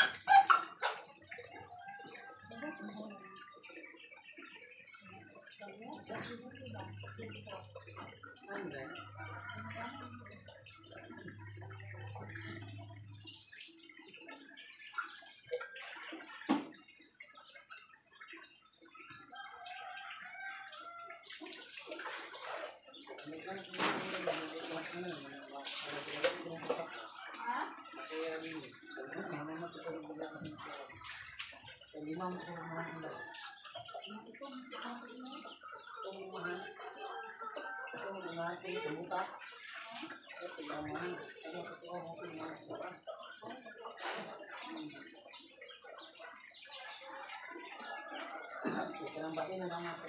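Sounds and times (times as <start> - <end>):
people talking: 0.0 - 16.7, 20.8 - 50.0
water sloshing and splashing: 0.0 - 50.0.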